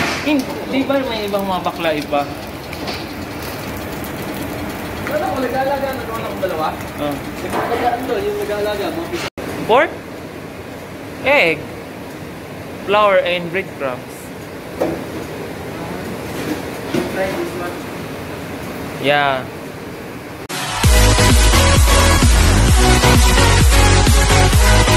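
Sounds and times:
eggs sizzling on griddle: 0.3 - 9.2
low running hum: 0.3 - 14.8.

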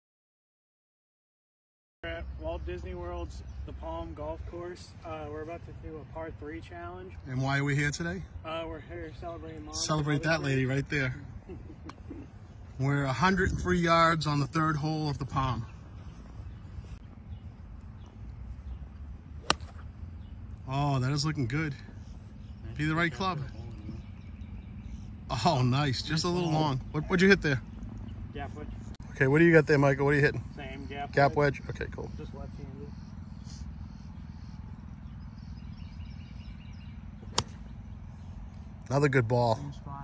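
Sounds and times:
low outdoor rumble: 2.0 - 40.0
golf club striking ball: 19.4 - 20.3, 37.2 - 37.7
faint bird chirps: 30.6 - 38.6.

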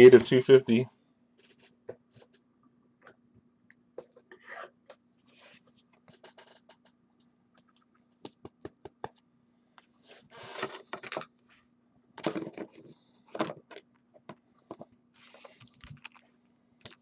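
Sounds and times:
faint steady hum: 0.0 - 17.0
rustling scrape of cards: 15.2 - 15.8.

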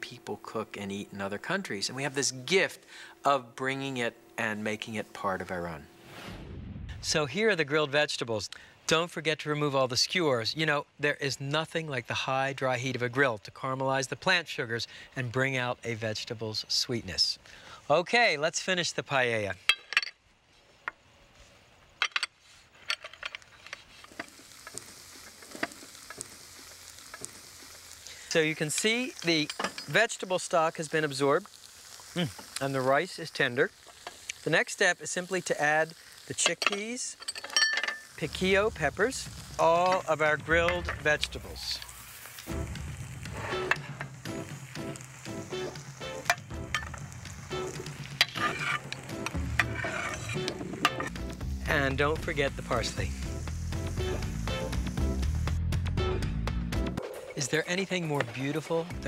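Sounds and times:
rice sizzling with small pops: 22.4 - 55.6
dishes clinking: 29.2 - 30.0, 36.4 - 38.1
background music: 38.3 - 59.0
metal spatula scraping pan: 48.2 - 51.2.

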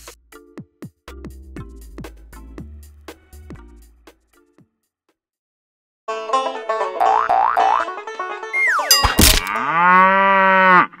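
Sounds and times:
plucked banjo tune: 6.1 - 9.3
cartoon falling whistle: 8.6 - 9.0
cartoon thud: 8.9 - 9.6
cartoon cow moo: 9.5 - 11.0.

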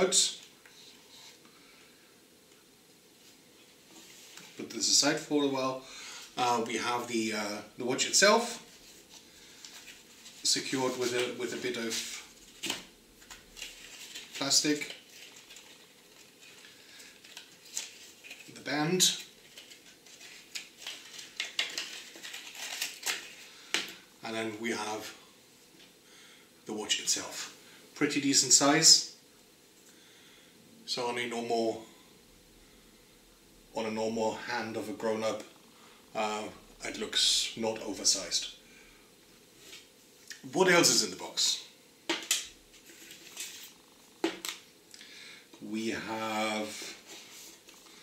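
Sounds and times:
packaging rustling and snapping: 11.1 - 18.6, 19.2 - 24.0.

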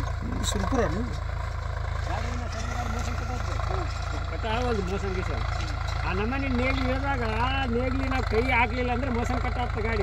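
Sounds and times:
tractor diesel engine rumble: 0.0 - 10.0
people talking: 0.2 - 1.2, 2.1 - 10.0.

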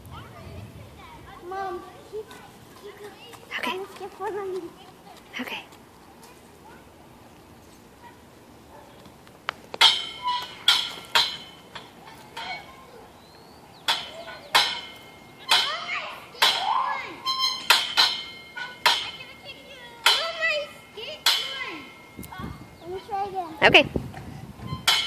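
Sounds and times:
metal rings clanking on hangers: 9.8 - 12.8, 13.8 - 23.4, 24.7 - 25.0.

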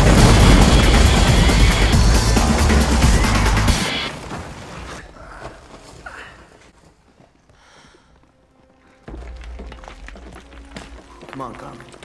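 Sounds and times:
low rumble: 0.0 - 3.9.

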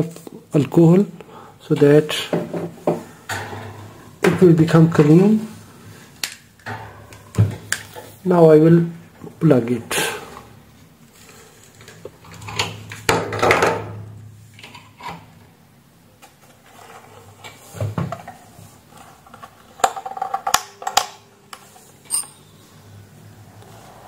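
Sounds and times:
fan and plug clicking and rattling: 6.2 - 8.1, 19.0 - 21.7.

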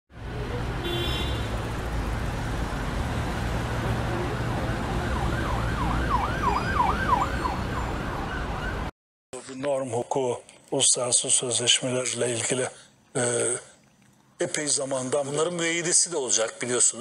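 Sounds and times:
city street traffic: 0.1 - 8.9
emergency siren yelping: 3.8 - 8.9.

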